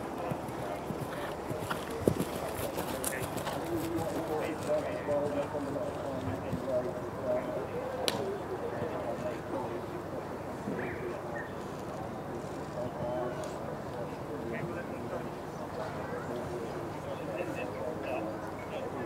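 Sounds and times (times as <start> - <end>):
murmur of voices: 0.0 - 19.0.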